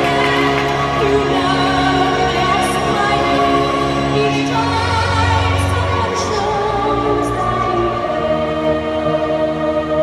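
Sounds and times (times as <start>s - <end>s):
background music: 0.0s - 10.0s
choir singing long notes: 0.0s - 10.0s.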